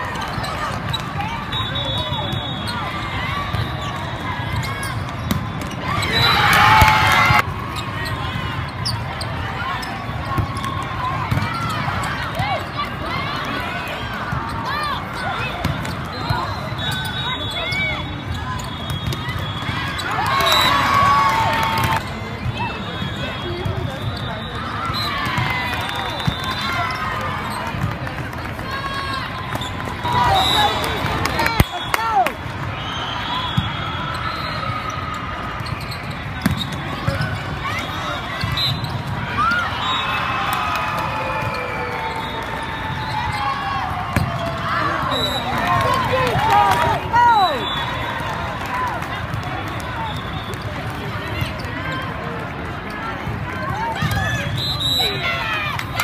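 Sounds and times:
hubbub of voices: 0.0 - 56.0
volleyballs struck and bouncing: 10.1 - 12.8, 36.2 - 37.5
sneaker squeaks on court: 35.6 - 37.5.

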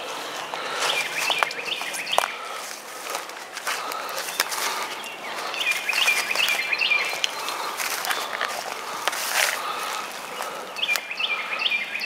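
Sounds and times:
outdoor background noise: 0.0 - 12.0
songbird chirping: 0.0 - 12.0.

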